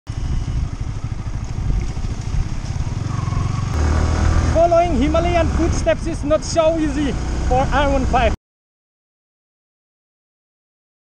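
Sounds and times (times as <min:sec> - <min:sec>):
motorcycle engine rumbling: 0:00.1 - 0:08.4.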